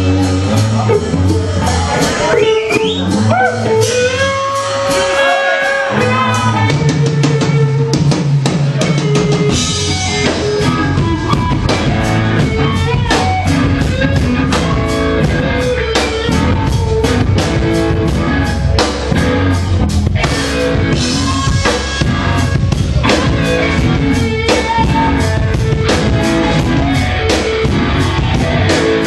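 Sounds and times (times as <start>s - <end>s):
drum kit steady beat: 0.0s - 29.0s
electric guitars: 0.0s - 29.0s.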